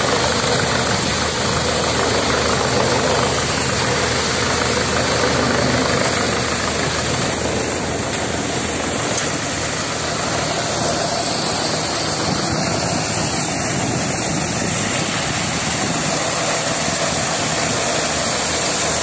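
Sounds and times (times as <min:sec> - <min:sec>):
thresher machine running: 0:00.0 - 0:19.0.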